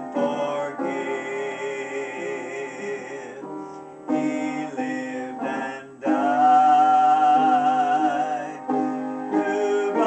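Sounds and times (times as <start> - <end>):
man singing: 0.0 - 10.0
upright piano accompaniment: 0.0 - 10.0.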